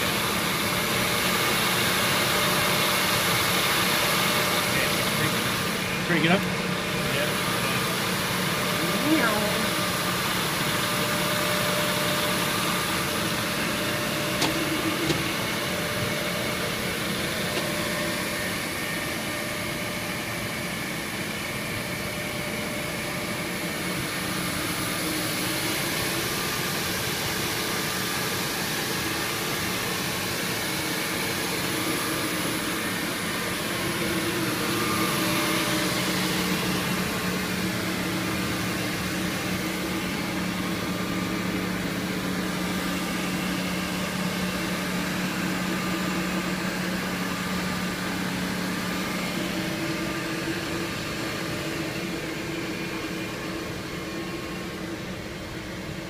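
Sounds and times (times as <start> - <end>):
drilling machine motor hum: 0.0 - 56.0.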